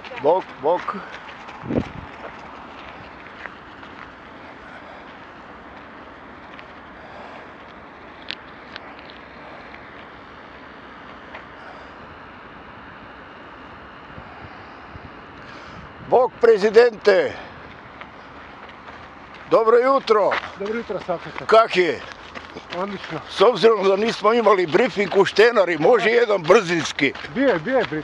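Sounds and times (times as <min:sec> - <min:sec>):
steady rushing outdoor noise: 0:00.0 - 0:28.0.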